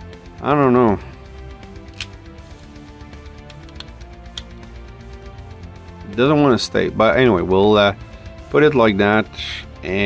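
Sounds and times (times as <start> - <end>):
heavy metal music with guitar: 0.0 - 10.0.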